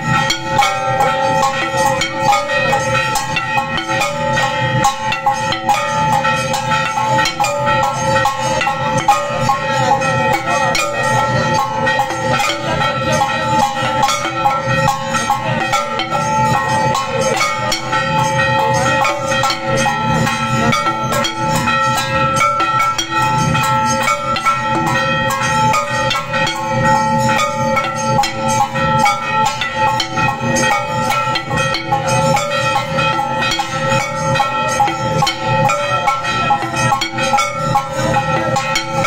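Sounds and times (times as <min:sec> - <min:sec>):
fast drum percussion: 0:00.0 - 0:39.0
jingling cymbal strikes: 0:00.0 - 0:39.0
steady ringing tones: 0:00.0 - 0:39.0.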